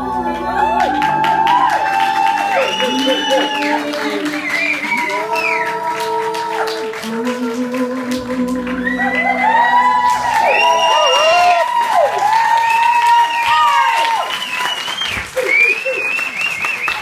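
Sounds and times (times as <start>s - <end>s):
audience cheering and whooping: 0.0s - 6.8s, 8.7s - 17.0s
backing music: 0.0s - 12.6s
audience clapping: 0.2s - 17.0s.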